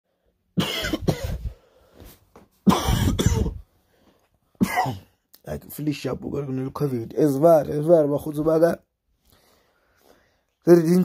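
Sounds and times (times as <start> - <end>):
man coughing: 0.6 - 1.5, 2.6 - 3.6, 4.6 - 5.2.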